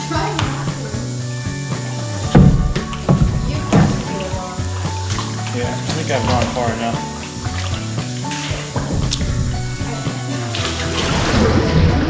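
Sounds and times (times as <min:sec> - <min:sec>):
background music sustained tones: 0:00.0 - 0:12.0
knocks on plastic kayak hull: 0:02.3 - 0:04.2.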